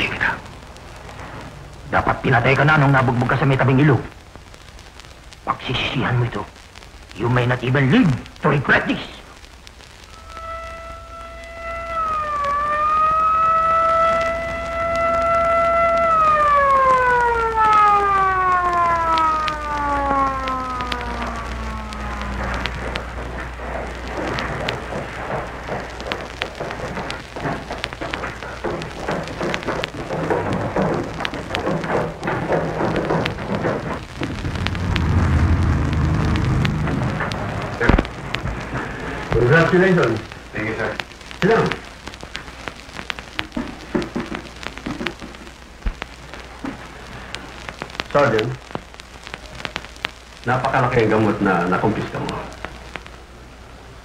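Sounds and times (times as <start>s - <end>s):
steady rushing noise: 0.0s - 7.2s, 20.4s - 54.0s
siren winding down: 10.2s - 23.1s, 34.0s - 38.4s.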